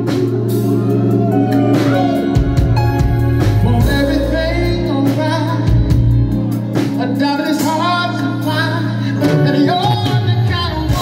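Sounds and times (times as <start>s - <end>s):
bass guitar: 0.0s - 11.0s
drums: 0.0s - 11.0s
electric guitar: 0.0s - 11.0s
person singing lead vocals: 0.0s - 11.0s.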